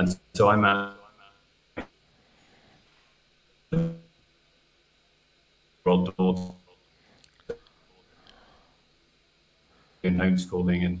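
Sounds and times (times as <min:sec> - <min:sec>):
man's voice over video call: 0:00.0 - 0:01.4, 0:05.9 - 0:06.7, 0:10.0 - 0:11.0.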